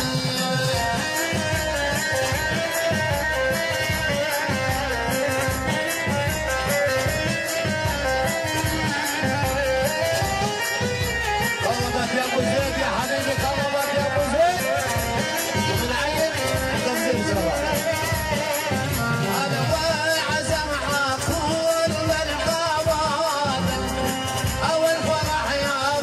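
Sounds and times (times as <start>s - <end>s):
electronic keyboard melody: 0.0s - 26.0s
steady drum beat: 0.0s - 26.0s.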